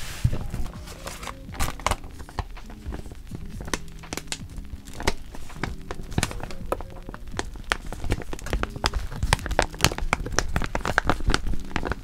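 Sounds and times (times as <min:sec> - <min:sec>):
packaging pouch crinkling: 0:00.0 - 0:12.0.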